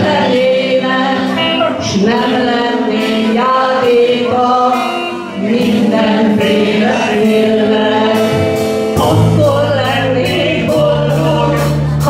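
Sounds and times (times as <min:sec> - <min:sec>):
live rock band: 0:00.0 - 0:12.0
woman singing: 0:00.0 - 0:12.0.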